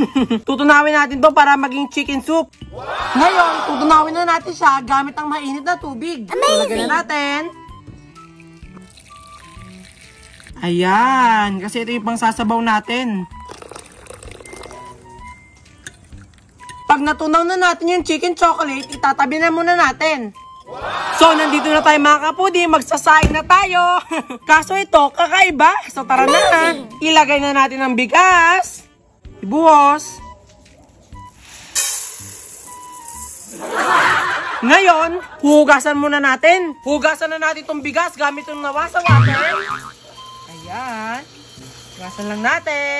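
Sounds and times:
quiet background music: 0.0s - 42.9s
water pouring from kettle: 8.4s - 10.7s, 13.4s - 15.1s.

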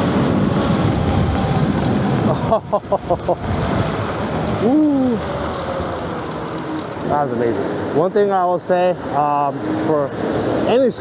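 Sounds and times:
wind rush on microphone: 0.0s - 8.2s
electric scooter road noise: 0.0s - 11.0s.

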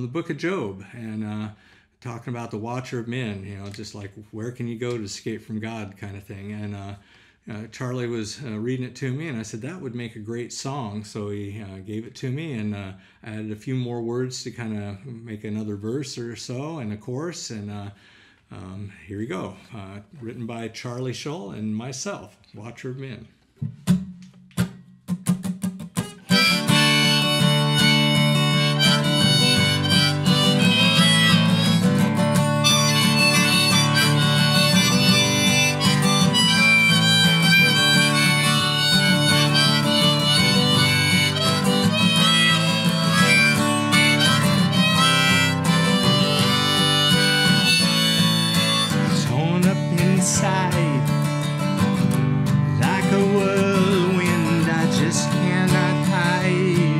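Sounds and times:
acoustic guitar strumming: 23.6s - 56.9s
harmonica melody: 26.0s - 56.9s.

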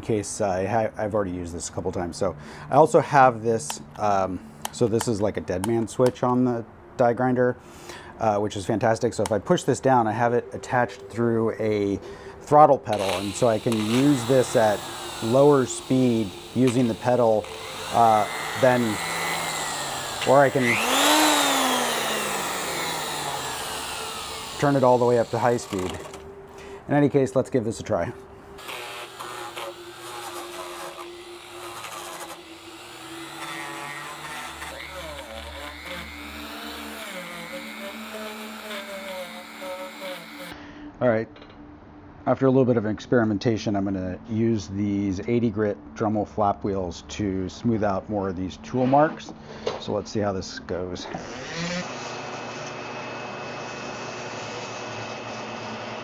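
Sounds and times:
rotary tool high whine: 9.9s - 40.6s, 51.1s - 56.0s
die grinder wire wheel on wood: 12.9s - 26.2s, 28.6s - 40.5s.

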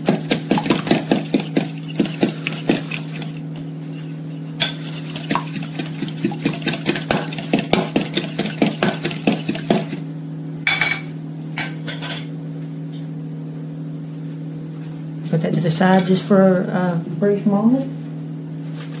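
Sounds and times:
eggs beaten in metal bowl: 0.0s - 10.1s
steady low hum: 0.0s - 19.0s.

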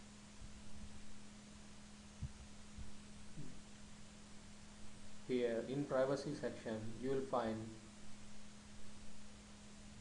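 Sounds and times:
faint electrical hum: 0.0s - 10.0s
soft low thumps: 2.1s - 3.8s.

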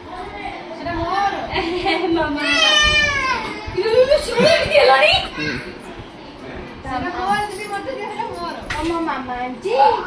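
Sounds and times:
people talking: 3.6s - 5.6s.

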